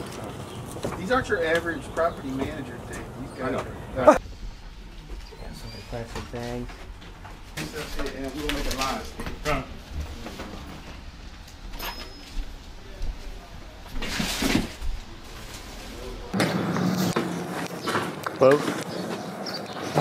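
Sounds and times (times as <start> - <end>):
handling noises: 4.9 - 20.0.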